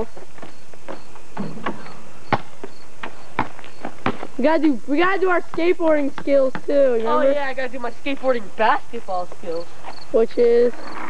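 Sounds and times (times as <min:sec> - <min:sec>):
basketball bouncing on pavement: 0:00.0 - 0:11.0.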